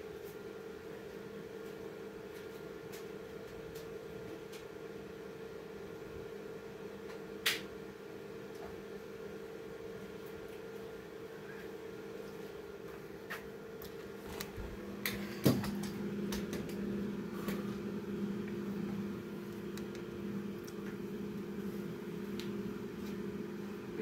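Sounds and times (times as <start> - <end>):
low machine hum: 0.0 - 24.0.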